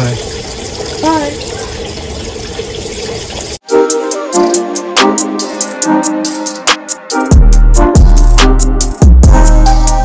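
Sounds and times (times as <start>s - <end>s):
music with a beat: 3.6s - 10.0s.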